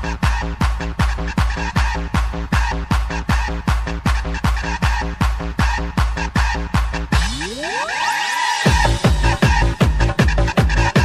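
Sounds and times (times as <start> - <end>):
fast kick drum: 0.0 - 7.6, 8.7 - 11.0
choppy pitched stabs: 0.0 - 11.0
techno track: 0.0 - 11.0.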